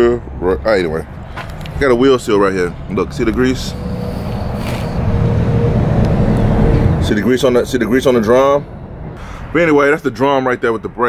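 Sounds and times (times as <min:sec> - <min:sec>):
vehicle engine rumbling: 0:00.0 - 0:10.2.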